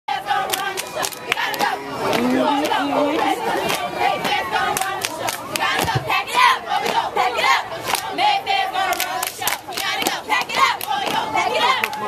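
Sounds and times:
children shouting and chattering: 0.2 - 12.0.

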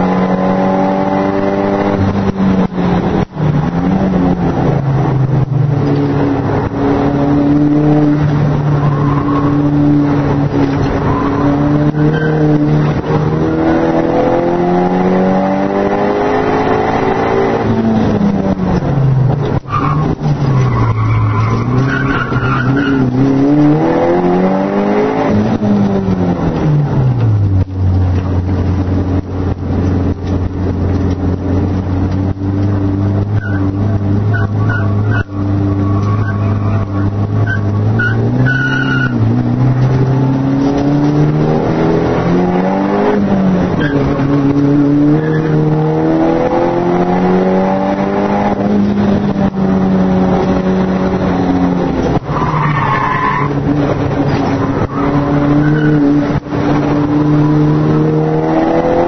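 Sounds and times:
car engine revving: 0.0 - 59.0
tyre squeals: 19.7 - 23.2, 33.3 - 39.2, 52.3 - 56.1.

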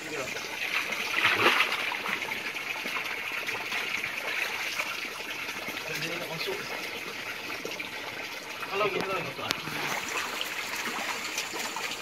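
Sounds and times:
creek water trickling: 0.0 - 12.0
nets splashing in water: 0.7 - 2.2.

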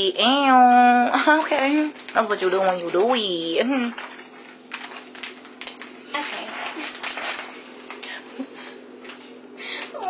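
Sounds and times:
plastic packaging crinkling: 0.6 - 10.0.

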